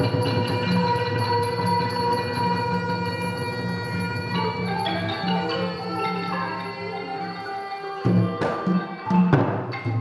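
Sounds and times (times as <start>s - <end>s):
traditional ensemble music: 0.0s - 10.0s.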